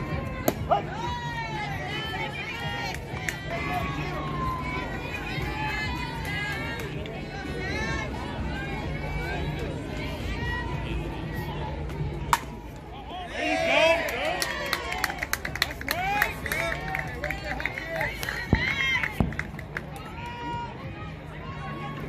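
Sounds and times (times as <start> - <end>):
people yelling and cheering: 0.0 - 22.0
people clapping: 4.8 - 7.2, 13.8 - 20.6
bat hitting softball: 12.3 - 12.6.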